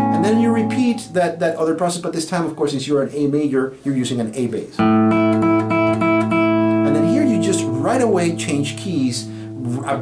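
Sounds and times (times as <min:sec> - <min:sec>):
man's voice: 0:00.1 - 0:04.8, 0:06.8 - 0:10.0
fingerstyle classical guitar: 0:04.8 - 0:08.8.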